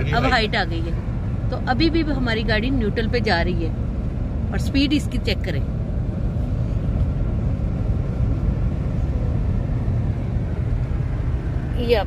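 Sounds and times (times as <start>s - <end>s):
car engine idling: 0.0s - 12.0s
road and tyre rumble: 0.0s - 12.0s.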